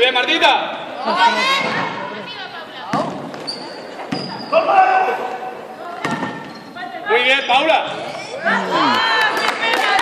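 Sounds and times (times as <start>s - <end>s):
basketball thudding in a hall: 2.8s - 4.5s, 6.0s - 6.7s.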